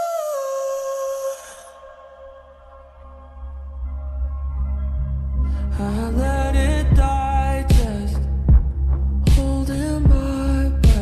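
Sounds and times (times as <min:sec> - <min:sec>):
slowed reverb-heavy pop music: 0:00.0 - 0:11.0
deep bass: 0:03.0 - 0:11.0.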